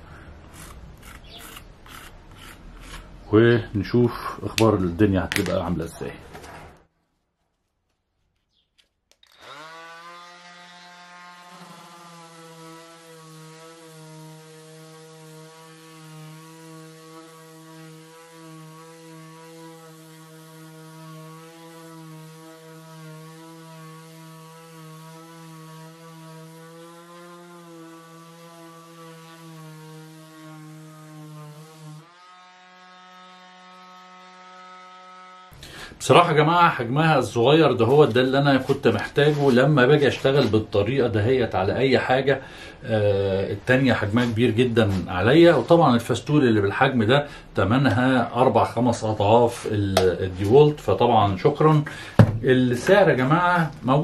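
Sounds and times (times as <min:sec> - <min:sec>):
orbital sander whining: 0:09.2 - 0:35.6.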